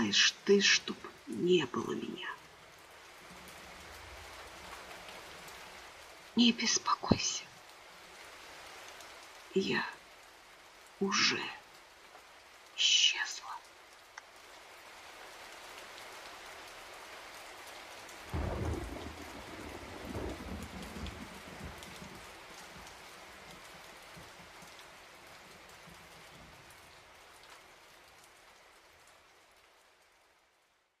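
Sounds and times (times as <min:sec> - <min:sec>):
steady rain falling: 0:00.0 - 0:31.0
rumbling thunder: 0:18.3 - 0:23.0.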